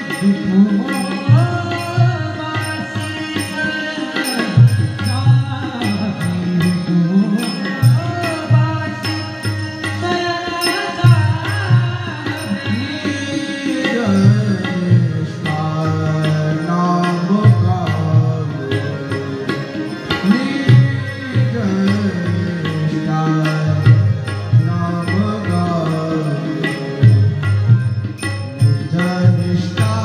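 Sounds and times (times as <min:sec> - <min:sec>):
devotional song: 0:00.0 - 0:30.0
sustained melodic accompaniment: 0:00.0 - 0:30.0
tabla playing: 0:00.0 - 0:30.0.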